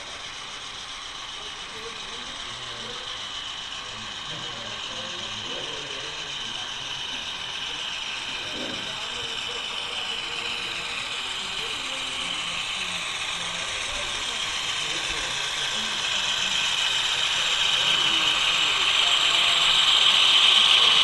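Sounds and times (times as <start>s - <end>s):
model trains whirring on track: 0.0s - 21.0s.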